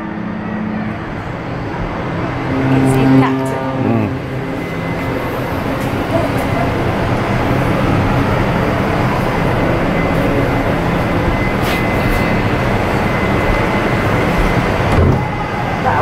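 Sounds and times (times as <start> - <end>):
ship horn sounding: 0.0 - 16.0
low rumble: 0.5 - 8.2.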